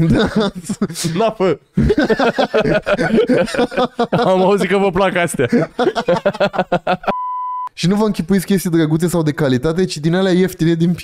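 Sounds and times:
man laughing: 0.0s - 7.2s
censor bleep tone: 7.1s - 7.7s.

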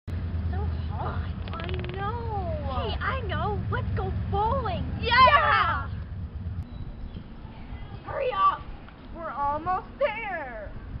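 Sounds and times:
low rumble: 0.1s - 9.2s.

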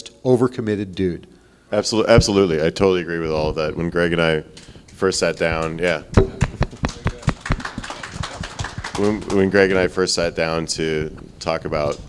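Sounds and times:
sharp taps and knocks: 5.4s - 7.6s.

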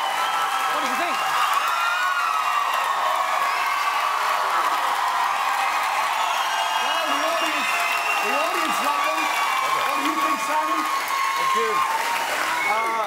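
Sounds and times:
audience applauding: 0.0s - 13.0s
studio audience cheering and whooping: 0.0s - 13.0s.

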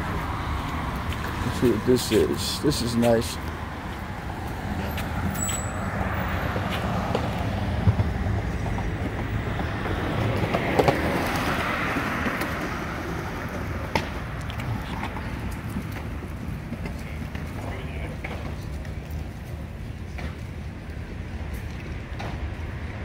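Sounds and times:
rumble of cars on road: 0.0s - 23.0s.

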